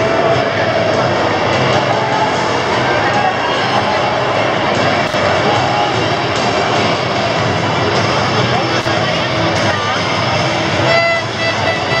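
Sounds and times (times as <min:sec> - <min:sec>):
stadium crowd chanting and cheering: 0:00.0 - 0:12.0
horn held note: 0:10.8 - 0:12.0.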